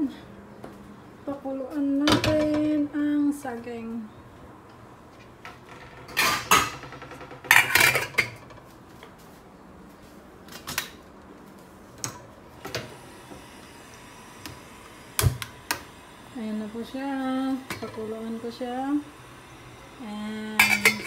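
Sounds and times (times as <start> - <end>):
metal cookware clattering on stovetop: 20.6 - 21.0.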